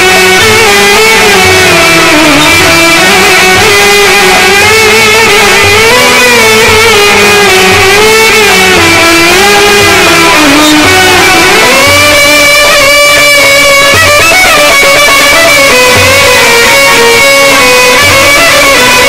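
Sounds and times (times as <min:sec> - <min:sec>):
instrumental live band music: 0:00.0 - 0:19.0.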